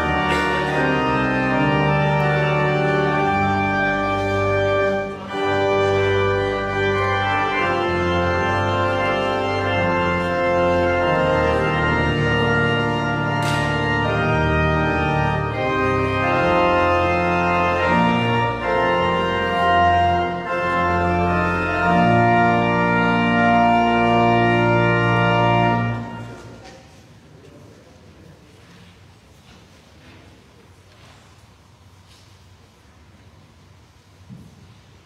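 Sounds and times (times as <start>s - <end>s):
organ playing sustained chords: 0.0s - 27.0s.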